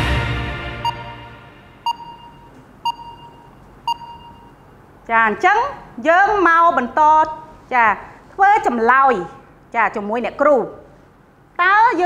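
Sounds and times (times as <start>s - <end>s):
background music: 0.0s - 2.5s
short electronic beeps: 0.8s - 4.7s.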